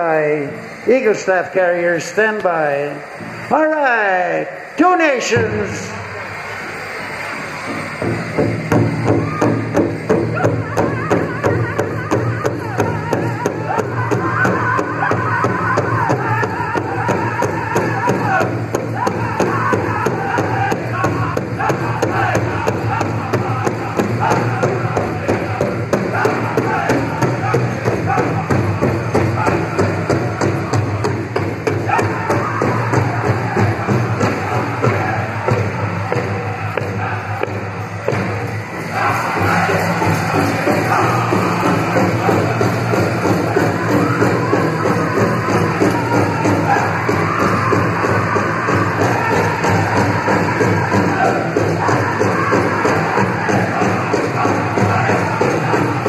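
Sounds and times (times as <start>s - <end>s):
group singing: 8.8s - 56.0s.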